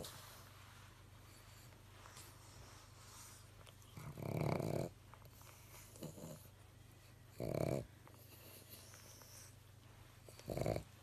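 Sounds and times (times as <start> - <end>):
dog snoring: 3.9 - 6.5, 7.3 - 9.5, 10.3 - 11.0.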